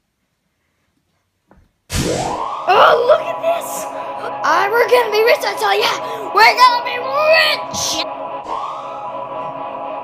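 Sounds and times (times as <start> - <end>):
rising swoop sound effect: 1.9 - 2.7.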